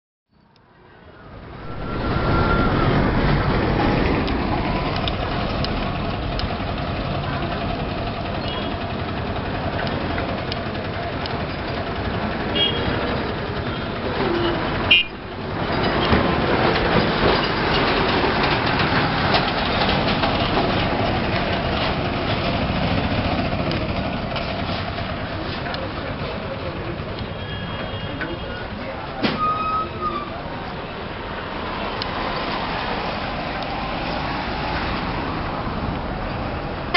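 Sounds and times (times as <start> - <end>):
traffic engines and tyre noise: 0.3 - 36.9.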